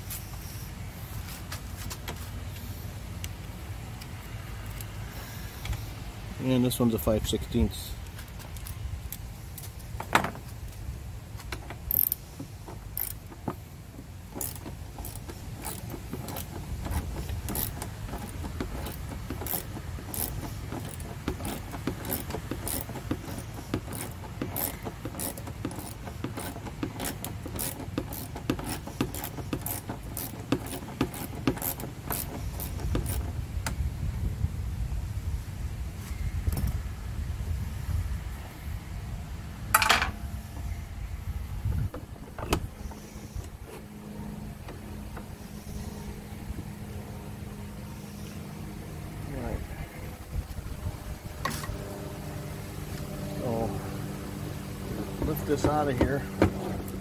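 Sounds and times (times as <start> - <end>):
low steady rumble: 0.0 - 57.0
ratchet wrench clicking: 11.8 - 12.2, 12.9 - 13.3, 14.4 - 33.3.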